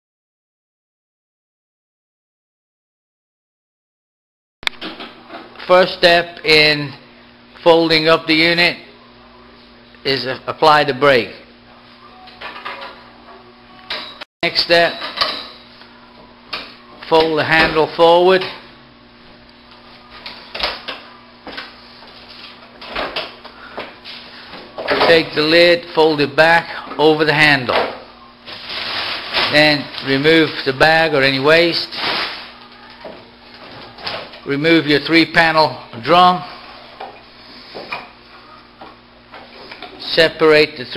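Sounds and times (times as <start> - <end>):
faint steady hum: 4.6 - 40.9
plastic bag rustling: 28.4 - 30.2, 31.7 - 32.8.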